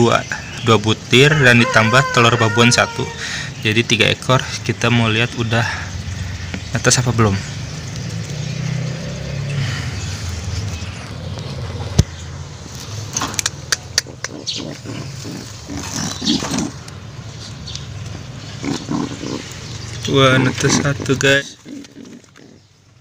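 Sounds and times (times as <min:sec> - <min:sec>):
sharp click: 0:13.2 - 0:14.4
pigeon cooing and grunting: 0:13.9 - 0:16.8, 0:18.6 - 0:19.6, 0:20.4 - 0:22.8.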